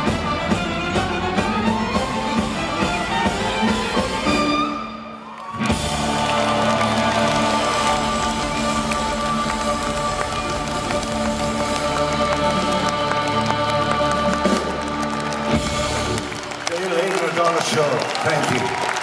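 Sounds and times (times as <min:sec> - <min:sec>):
rock band with string orchestra: 0:00.0 - 0:18.5
audience applause and cheering: 0:02.8 - 0:19.0.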